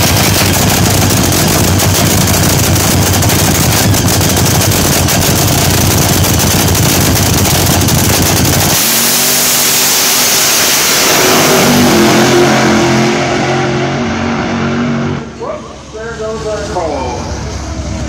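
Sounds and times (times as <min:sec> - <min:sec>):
dragster engine crackling idle: 0:00.0 - 0:08.8
dragster launching down track: 0:00.0 - 0:18.0.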